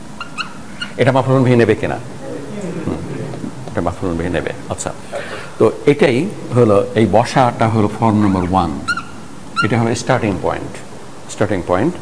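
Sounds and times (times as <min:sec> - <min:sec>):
man speaking: 0:01.0 - 0:08.8.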